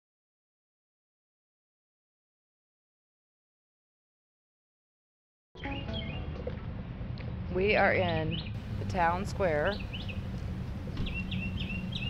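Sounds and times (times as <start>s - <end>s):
bird chirping high notes: 5.6s - 6.6s, 9.6s - 12.0s
low outdoor rumble: 5.8s - 12.0s.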